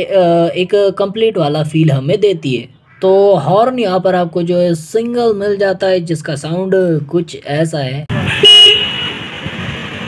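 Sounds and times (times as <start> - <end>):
motorcycle horn toot: 8.2 - 9.2.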